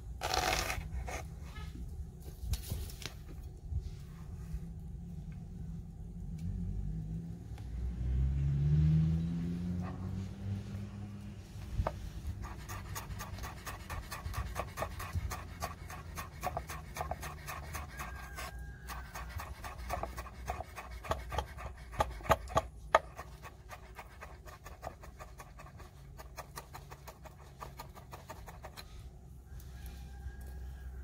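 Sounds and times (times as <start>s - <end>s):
knife chopping on wooden board: 18.9s - 23.3s.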